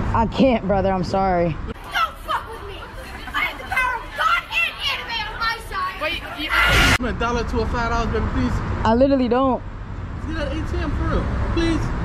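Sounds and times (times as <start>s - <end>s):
children chattering: 1.8s - 6.9s.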